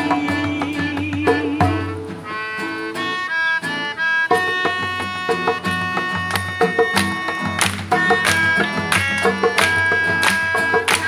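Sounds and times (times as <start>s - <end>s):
melodica melody: 0.0s - 11.0s
strummed acoustic guitar: 0.0s - 11.0s.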